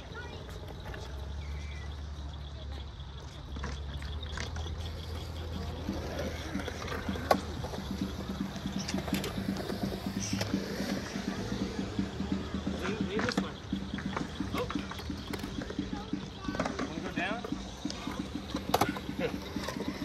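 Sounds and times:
skateboard wheels rolling on concrete: 0.0s - 20.0s
skateboard clacks: 3.2s - 20.0s.

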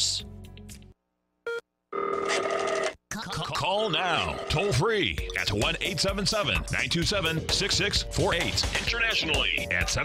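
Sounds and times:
telephone ringing: 1.5s - 3.0s, 3.8s - 4.8s.

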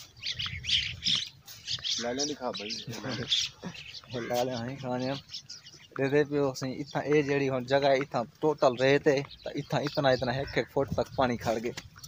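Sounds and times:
birds calling: 0.0s - 12.0s.

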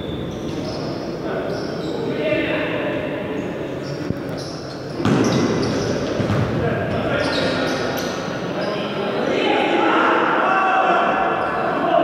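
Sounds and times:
voices shouting in a hall: 0.0s - 12.0s
ball thudding on hard floor: 5.0s - 5.4s.

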